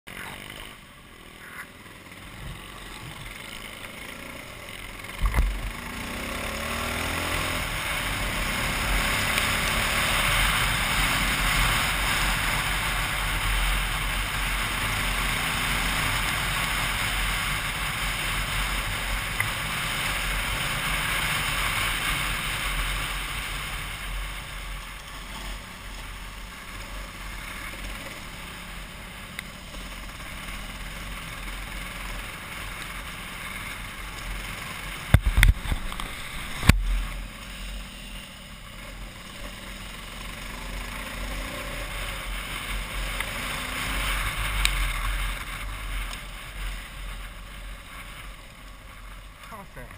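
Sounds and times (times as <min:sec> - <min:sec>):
motorcycle engine running: 0:00.1 - 0:49.9
road noise: 0:00.1 - 0:49.9
wind noise: 0:35.1 - 0:37.0.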